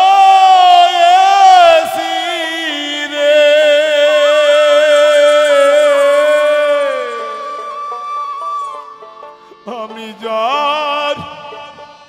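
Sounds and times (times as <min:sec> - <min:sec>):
man singing a long high note: 0:00.0 - 0:08.8, 0:09.4 - 0:12.0.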